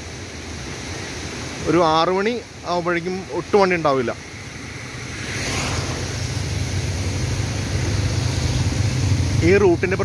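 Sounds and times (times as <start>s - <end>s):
steady rushing noise: 0.0s - 10.0s
vehicle engine running: 4.2s - 10.0s.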